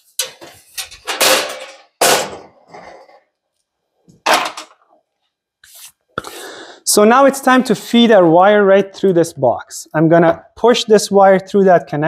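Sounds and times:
metal panel knocks and clatters: 0.1 - 2.5.

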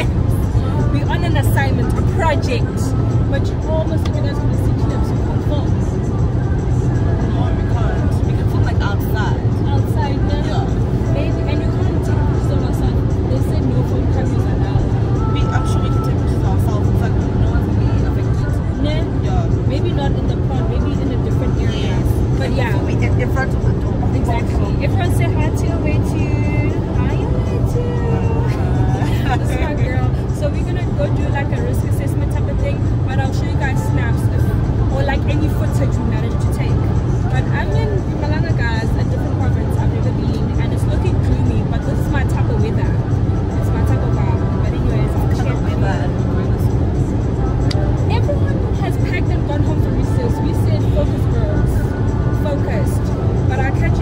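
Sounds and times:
women talking: 0.0 - 6.2, 6.9 - 54.0
car rumbling: 0.0 - 54.0
music playing: 0.0 - 54.0.

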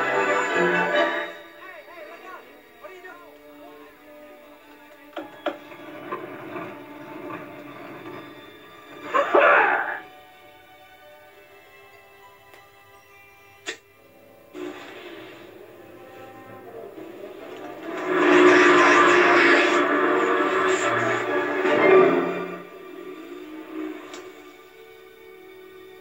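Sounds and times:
background music: 0.0 - 26.0
loud rushing noise: 17.0 - 24.5.

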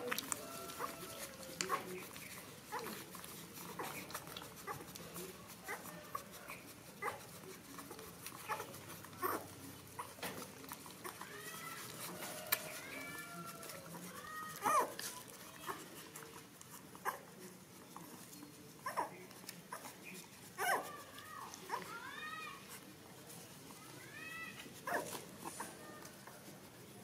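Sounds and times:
puppies whining: 0.0 - 17.3, 18.0 - 22.8.

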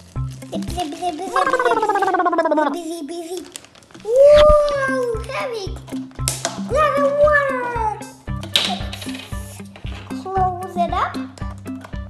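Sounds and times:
background music with steady beat: 4.4 - 12.0.

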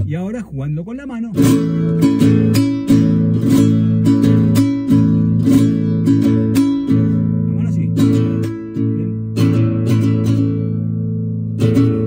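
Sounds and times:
classical guitar strumming: 1.1 - 12.0.

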